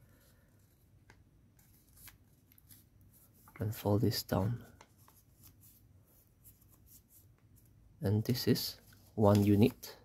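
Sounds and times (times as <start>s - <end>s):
paper rustling and creasing: 8.8s - 9.9s.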